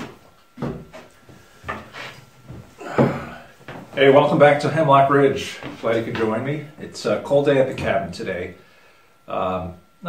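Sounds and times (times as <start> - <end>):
wooden chair moved: 0.0 - 3.9.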